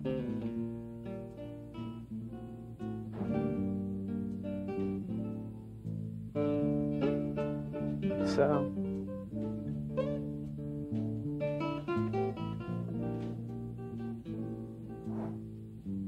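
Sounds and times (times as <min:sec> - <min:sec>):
acoustic guitar playing chords: 0:00.0 - 0:16.0.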